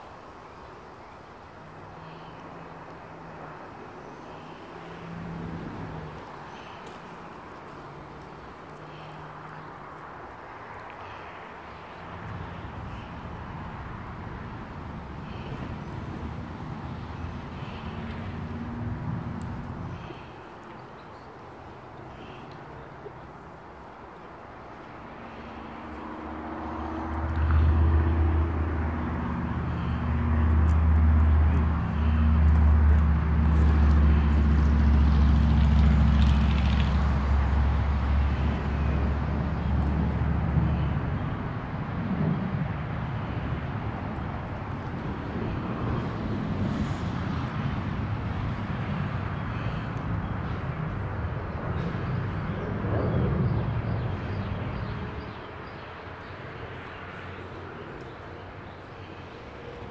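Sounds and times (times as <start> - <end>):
outdoor background noise: 0.0 - 59.9
vehicle engine drone: 0.0 - 59.9.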